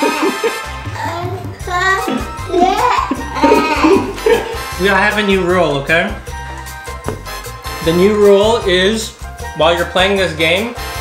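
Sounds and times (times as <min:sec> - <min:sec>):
background music with bass line: 0:00.0 - 0:11.0
child vocalizing: 0:00.8 - 0:04.2.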